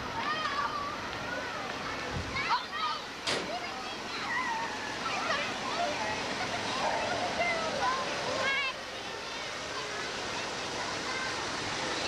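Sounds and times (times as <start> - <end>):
distant children chattering: 0.0 - 12.0.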